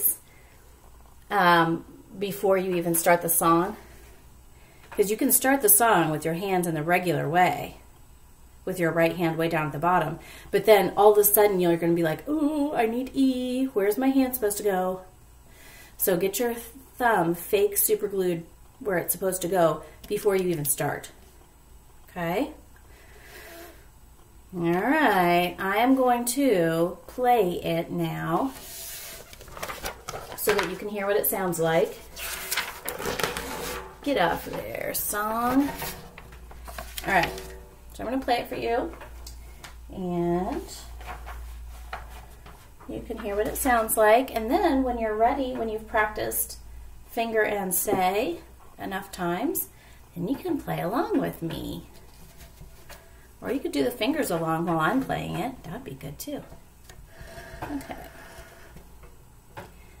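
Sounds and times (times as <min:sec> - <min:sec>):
paper rustling and sliding: 0:28.4 - 0:30.9, 0:31.8 - 0:34.7, 0:35.3 - 0:37.7.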